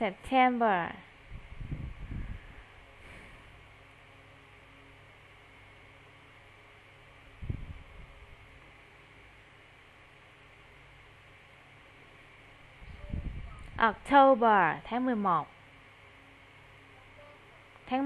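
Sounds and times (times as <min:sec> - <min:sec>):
low hum: 0:00.0 - 0:18.0.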